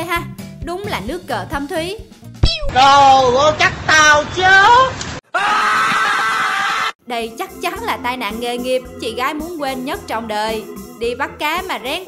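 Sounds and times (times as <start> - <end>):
woman screaming: 5.3 - 7.0.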